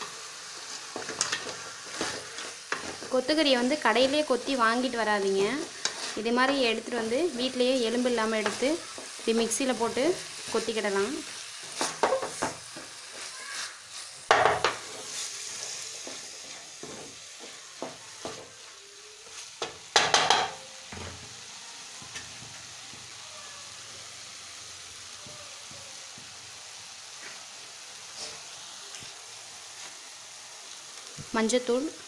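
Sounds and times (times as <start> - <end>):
frying sizzle: 0.0 - 32.0
spatula scraping metal pan: 5.6 - 6.6.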